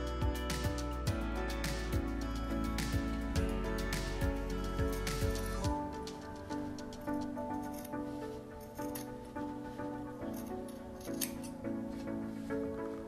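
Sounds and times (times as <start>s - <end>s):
gentle background music: 0.0s - 13.0s.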